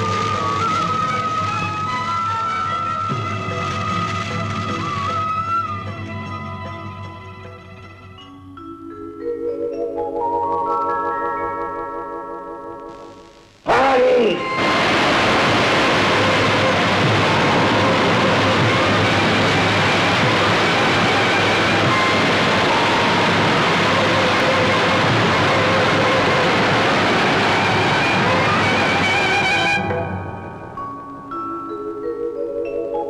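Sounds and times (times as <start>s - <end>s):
rushing flood water: 14.6s - 29.8s.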